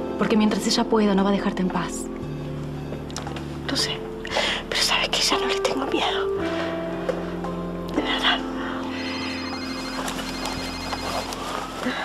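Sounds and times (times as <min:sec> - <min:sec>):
telephone ringing: 0:09.0 - 0:12.0.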